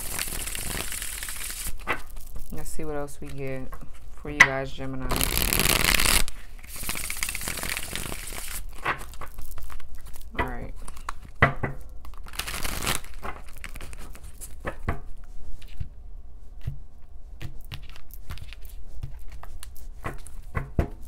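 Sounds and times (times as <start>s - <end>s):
cards shuffling: 0.0s - 4.2s, 5.1s - 14.8s, 17.4s - 21.0s.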